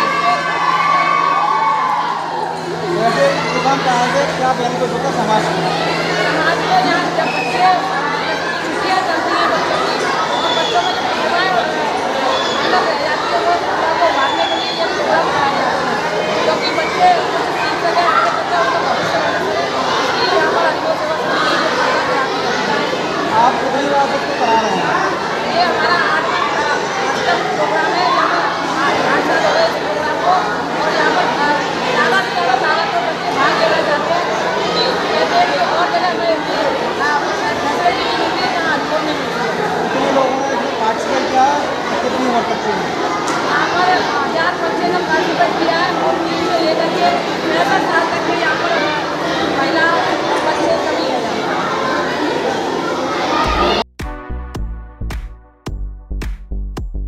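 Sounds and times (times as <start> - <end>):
steady low hum: 0.0 - 10.4
children shouting and chattering: 0.0 - 53.9.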